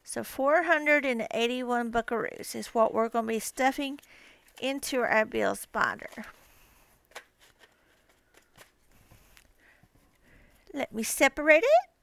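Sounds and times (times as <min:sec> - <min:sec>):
paper banknotes rustling: 0:02.2 - 0:10.2.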